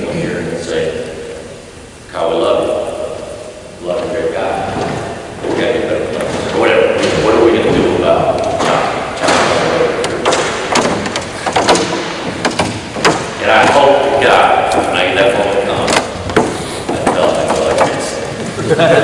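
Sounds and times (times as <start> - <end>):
man lecturing with echo: 0.0 - 1.5, 2.1 - 10.6, 13.3 - 16.2, 16.9 - 19.0
sharp thumps: 4.6 - 18.2.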